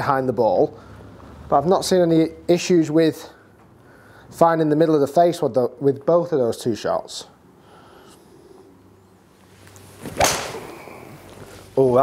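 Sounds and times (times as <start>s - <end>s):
golf club swish: 9.8s - 10.8s
golf ball strike click: 10.2s - 10.6s.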